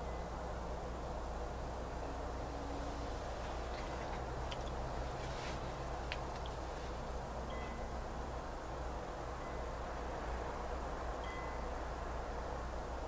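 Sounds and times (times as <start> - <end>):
faint high ringing tones: 0.0 - 3.3, 7.4 - 8.5, 9.3 - 9.9, 11.2 - 13.0
steady background hiss: 0.0 - 13.0.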